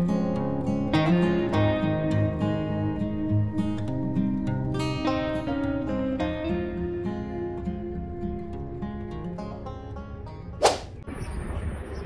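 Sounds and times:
plucked acoustic guitar music: 0:00.0 - 0:10.6
loud whoosh effect: 0:10.6 - 0:11.0.

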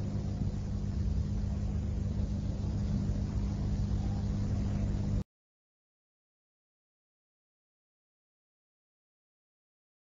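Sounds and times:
low hum of old recording: 0:00.0 - 0:05.3.

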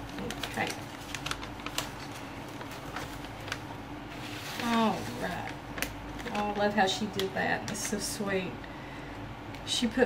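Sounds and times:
paper gift bag crinkling: 0:00.0 - 0:08.2.

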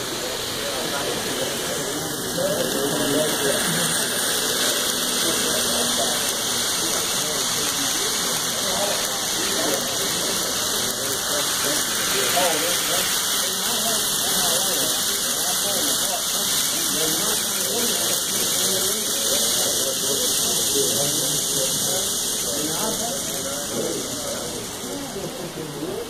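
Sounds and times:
indistinct background chatter: 0:00.0 - 0:26.0
model trains rolling on track: 0:00.0 - 0:26.0.

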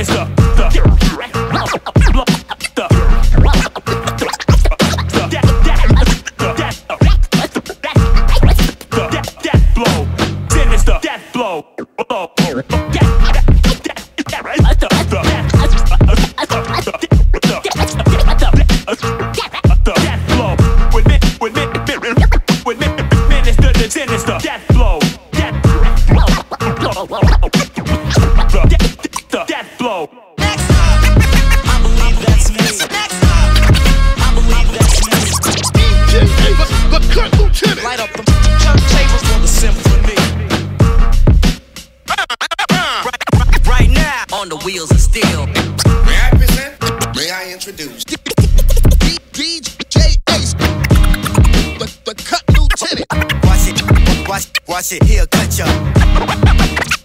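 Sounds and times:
heavy bass and drum beat: 0:00.0 - 0:11.0, 0:12.4 - 0:29.3, 0:30.4 - 0:47.2, 0:48.1 - 0:57.0
turntable scratching: 0:00.0 - 0:11.1, 0:11.8 - 0:29.5, 0:30.4 - 0:57.0.

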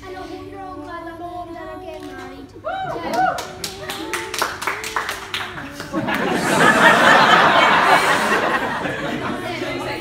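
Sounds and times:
people clapping: 0:02.8 - 0:08.6.

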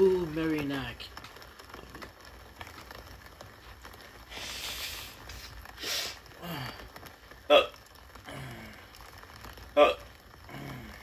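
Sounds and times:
brief hissing noises: 0:04.3 - 0:06.2
man belching: 0:07.5 - 0:08.9, 0:09.8 - 0:11.0.

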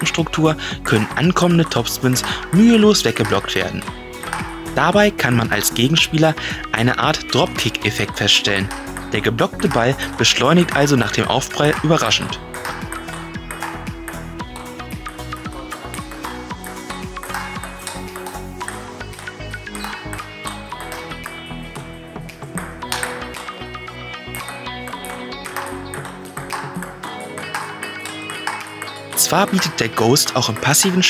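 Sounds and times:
background music with steady beat: 0:00.0 - 0:31.0
ping pong ball clicking: 0:00.8 - 0:05.9, 0:07.3 - 0:31.0.

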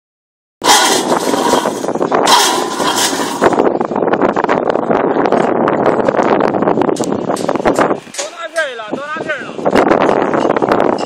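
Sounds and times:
strand pusher motor running: 0:00.6 - 0:03.6
rapid rattling clatter: 0:00.6 - 0:03.8.

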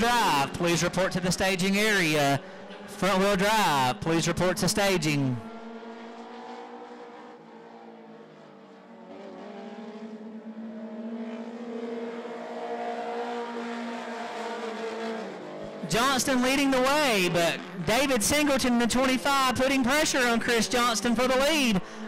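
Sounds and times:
stock car engines running hard: 0:00.0 - 0:22.0.

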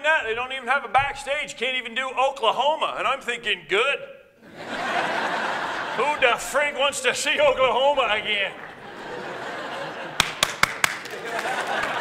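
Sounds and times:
audience laughing: 0:04.4 - 0:12.0
hand claps: 0:08.5 - 0:09.0, 0:10.1 - 0:12.0.

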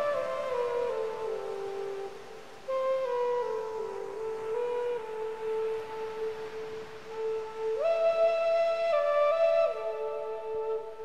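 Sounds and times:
faint hiss: 0:00.0 - 0:11.0
flute playing a low note: 0:00.0 - 0:11.0.

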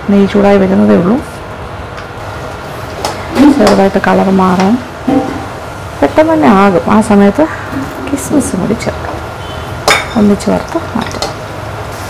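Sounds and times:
frying sizzle: 0:01.5 - 0:12.0.

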